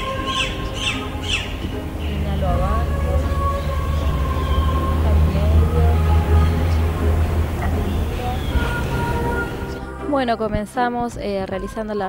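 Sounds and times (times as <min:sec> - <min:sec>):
bird squawking call: 0:00.0 - 0:05.1.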